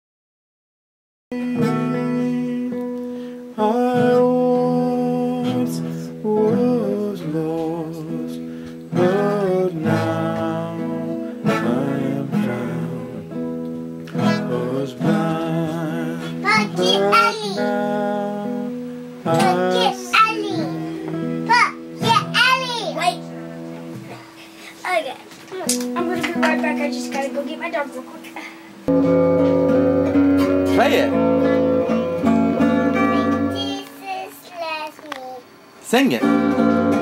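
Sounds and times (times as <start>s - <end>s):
person singing: 1.3s - 13.4s, 14.1s - 21.5s, 30.4s - 33.8s
classical guitar strummed chords: 1.3s - 24.4s, 25.5s - 34.8s, 36.0s - 37.0s.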